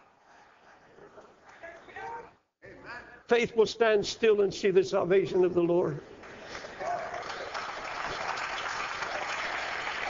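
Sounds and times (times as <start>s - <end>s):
congregation applauding: 6.2s - 10.0s.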